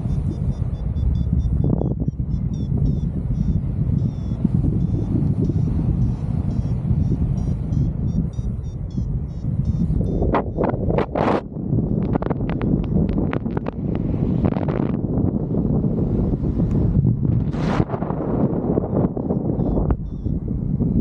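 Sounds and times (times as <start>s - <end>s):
variometer beeping: 0.0s - 15.6s, 18.4s - 21.0s
wind buffeting microphone: 0.0s - 21.0s.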